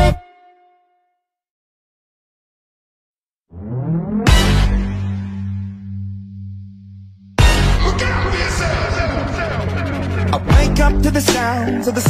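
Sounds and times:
music beat: 7.4s - 12.0s.

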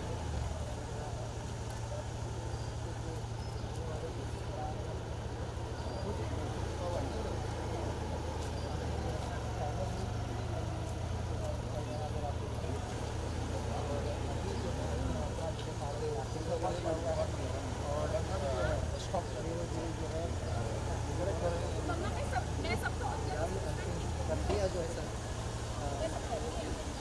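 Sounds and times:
people's voices: 0.0s - 27.0s
vehicle engine running at low revs: 0.0s - 27.0s.

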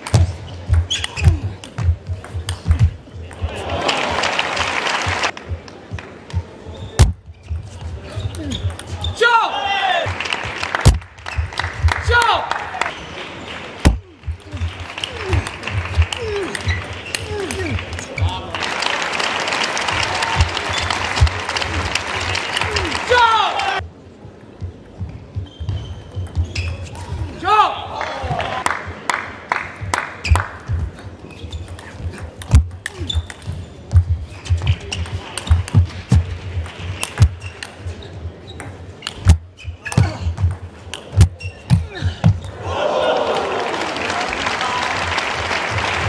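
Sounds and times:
player shouting: 22.6s - 23.8s.

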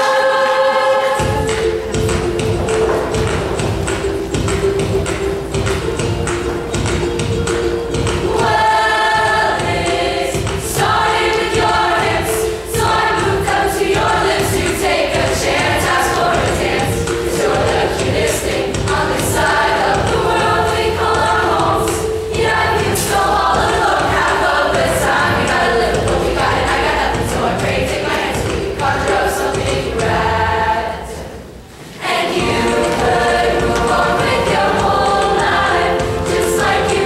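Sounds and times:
choir singing in harmony: 0.0s - 37.0s
instrumental accompaniment with beat: 0.8s - 37.0s.

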